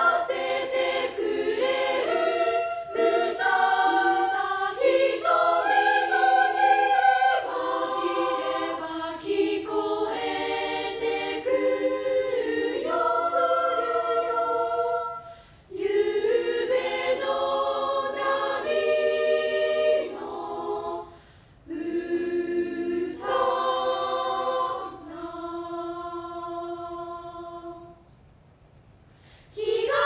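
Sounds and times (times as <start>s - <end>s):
girls' choir singing: 0.0s - 28.0s, 29.5s - 30.0s.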